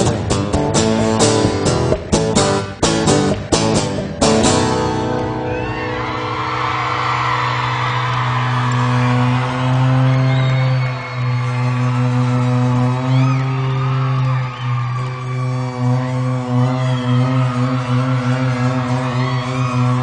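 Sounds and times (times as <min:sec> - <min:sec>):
live band sustained low chord: 0:00.0 - 0:19.4
audience cheering and whistling: 0:05.0 - 0:20.0.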